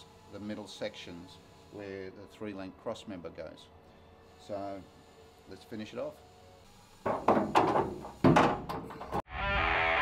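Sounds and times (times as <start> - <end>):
sharp knocks: 7.0 - 9.2.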